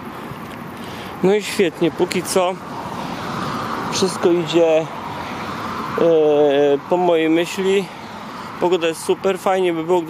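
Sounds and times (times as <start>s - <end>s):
expressway traffic noise: 0.0s - 10.0s.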